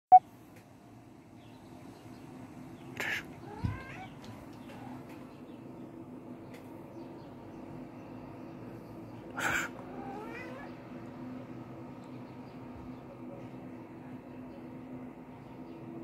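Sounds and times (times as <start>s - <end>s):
faint steady hum: 0.1s - 16.0s
harsh animal call: 9.3s - 10.7s.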